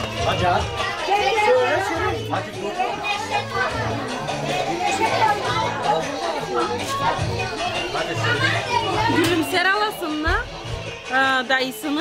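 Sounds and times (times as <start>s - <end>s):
background music with bass: 0.0s - 11.4s
crowd chattering: 0.0s - 12.0s
children's voices: 0.6s - 9.5s.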